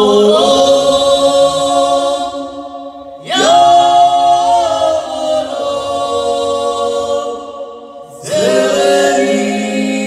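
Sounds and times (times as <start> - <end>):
folk band singing in harmony: 0.0 - 10.0.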